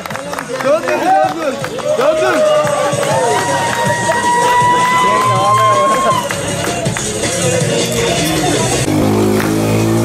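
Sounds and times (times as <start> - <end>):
crowd calling and shouting: 0.0 - 10.0
music: 0.0 - 10.0.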